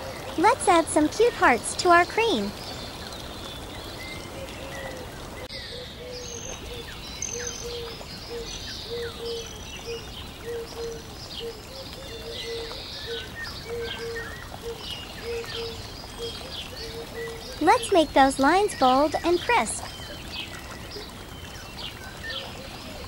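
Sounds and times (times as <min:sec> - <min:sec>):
birds chirping: 0:00.0 - 0:23.0.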